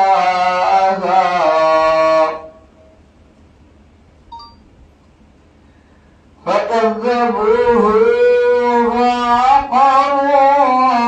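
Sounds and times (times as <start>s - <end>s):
man chanting: 0.0s - 2.7s, 6.4s - 11.0s
faint short beep: 4.3s - 4.7s.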